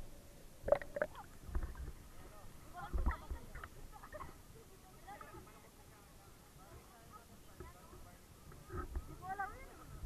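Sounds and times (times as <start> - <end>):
water sloshing and gurgling underwater: 0.0 - 5.8, 7.6 - 10.0.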